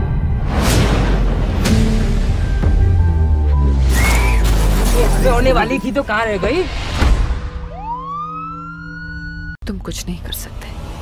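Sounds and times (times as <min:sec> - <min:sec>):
siren winding up: 0:07.7 - 0:09.6.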